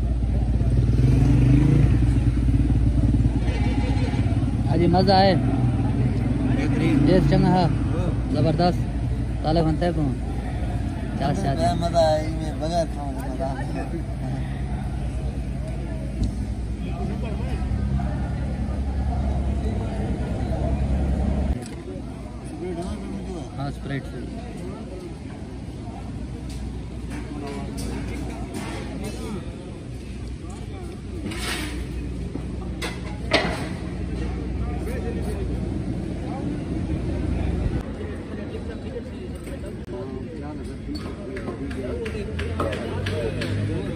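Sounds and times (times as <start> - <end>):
low engine hum: 0.0 - 38.6
men talking indistinctly: 3.2 - 31.3, 34.0 - 43.9.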